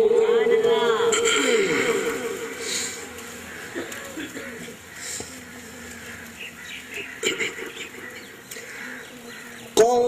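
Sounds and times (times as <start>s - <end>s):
background murmur: 0.0s - 10.0s
man reciting into a microphone: 9.8s - 10.0s.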